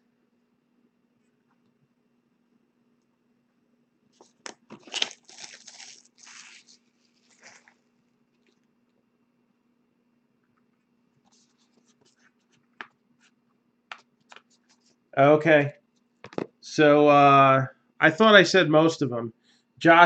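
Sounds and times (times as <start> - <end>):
plastic wrapping crinkling and tearing: 4.2 - 8.6.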